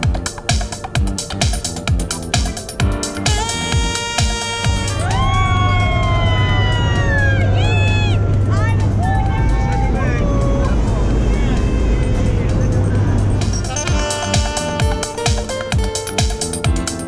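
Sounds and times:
plane engine drone: 0.0 - 16.0
music: 0.0 - 17.0
people yelling and whooping: 4.8 - 12.9.

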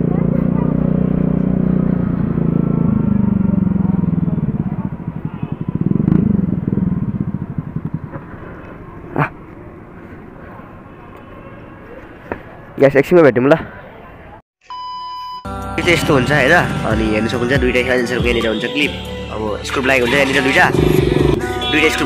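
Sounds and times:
motor scooter engine running: 0.0 - 10.1, 20.1 - 22.0
street background noise: 0.0 - 14.4, 15.9 - 22.0.

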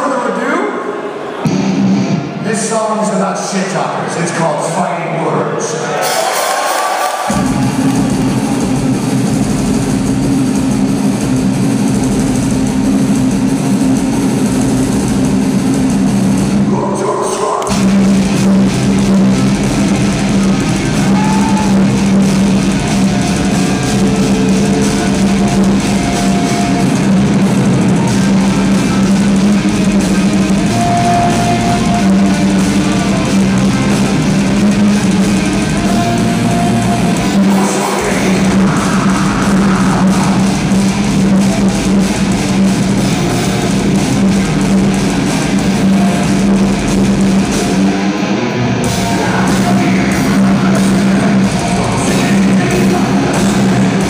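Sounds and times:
heavy metal band playing live: 0.7 - 54.0.

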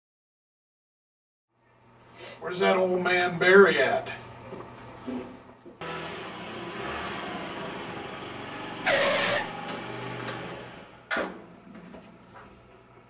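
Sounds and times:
motor scooter engine running: 5.8 - 10.7.

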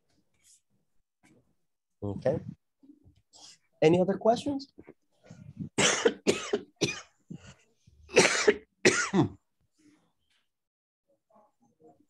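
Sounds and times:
man coughing: 5.8 - 7.1, 8.1 - 9.4.

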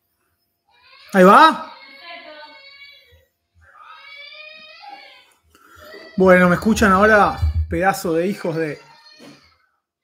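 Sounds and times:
muffled person's voice: 6.2 - 8.4.

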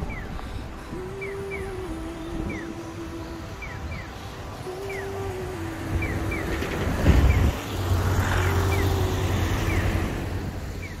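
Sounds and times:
road traffic engine hum: 0.0 - 11.0
vehicle passing: 3.5 - 11.0.

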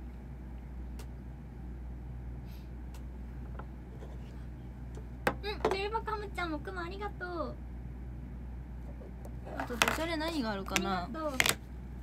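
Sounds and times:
room noise hum: 0.0 - 12.0.

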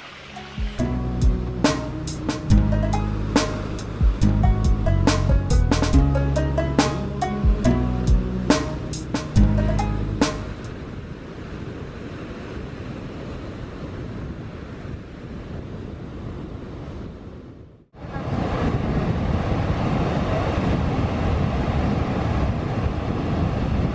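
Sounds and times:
sea waves on sandy beach: 10.3 - 16.8
wind on microphone: 10.6 - 23.9.

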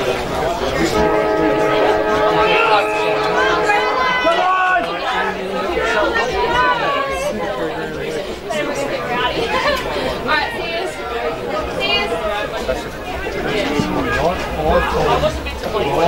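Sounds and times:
spectators talking and calling out: 0.0 - 16.0.

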